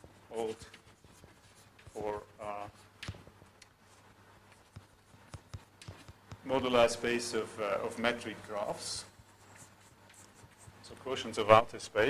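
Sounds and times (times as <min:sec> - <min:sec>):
chalk scratching on blackboard: 0:00.0 - 0:07.0, 0:08.6 - 0:11.4.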